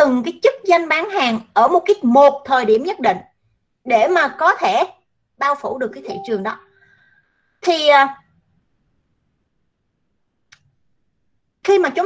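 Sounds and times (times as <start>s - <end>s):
person speaking: 5.6s - 6.7s.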